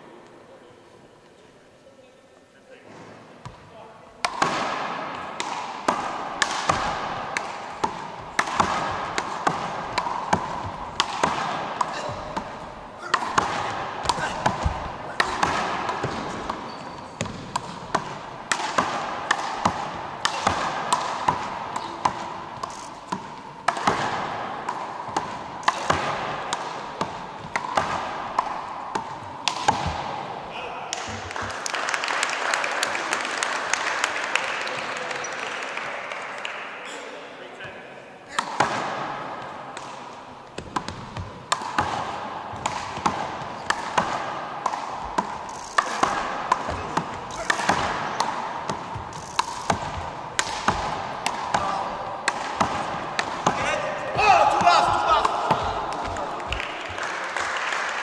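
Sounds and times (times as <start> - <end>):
ball smacking off wall and floor: 2.9 - 30.2
ball slapped by hands: 3.4 - 30.3, 30.9 - 32.0, 38.3 - 57.6.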